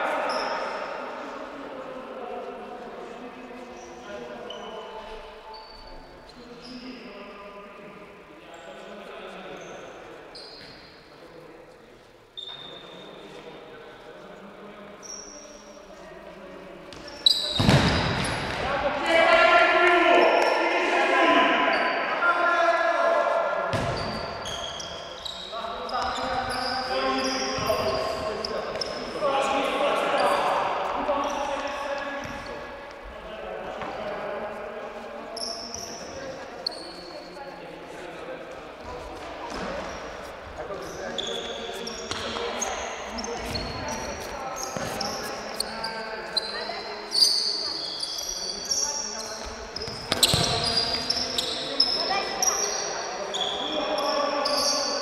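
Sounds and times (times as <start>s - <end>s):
shoes squeaking on court: 3.6s - 7.1s, 9.5s - 11.1s, 12.4s - 13.6s, 15.0s - 15.9s, 16.8s - 18.7s, 23.7s - 29.2s, 35.4s - 37.4s, 38.8s - 55.0s
ball kicks: 17.6s - 18.7s, 23.7s - 24.2s.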